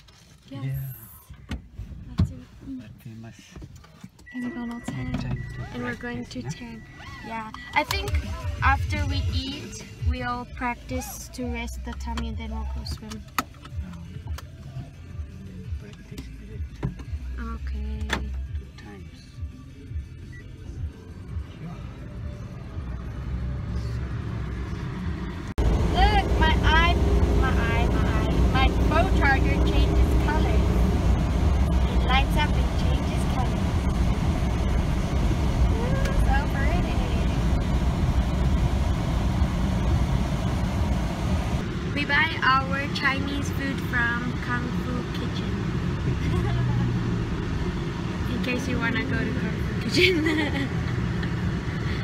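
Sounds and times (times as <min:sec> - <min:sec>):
car engine and road rumble: 0:00.0 - 0:52.0.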